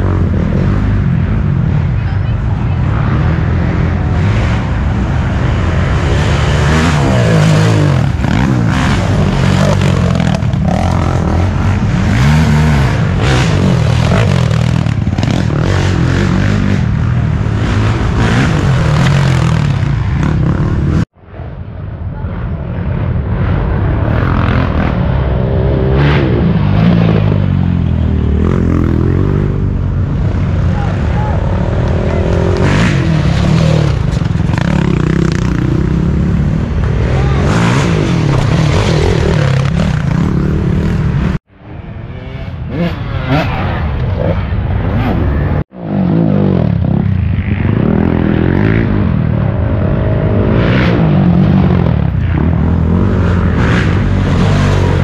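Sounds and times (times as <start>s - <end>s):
racing atv engines revving: 0.0s - 21.2s, 22.8s - 55.0s.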